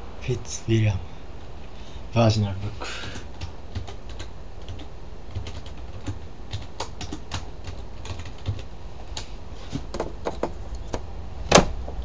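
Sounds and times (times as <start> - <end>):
computer keyboard typing: 3.0 - 8.7.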